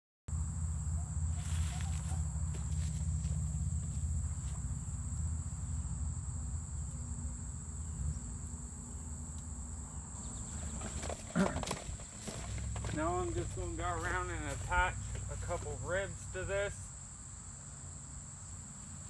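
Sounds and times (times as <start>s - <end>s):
high-pitched insect drone: 0.3s - 10.6s.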